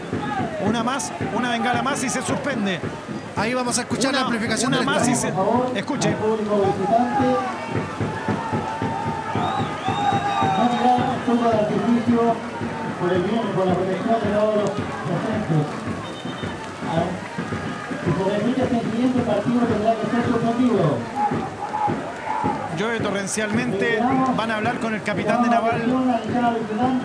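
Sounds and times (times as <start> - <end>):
announcement over loudspeakers: 0.0 - 8.2, 10.4 - 27.0.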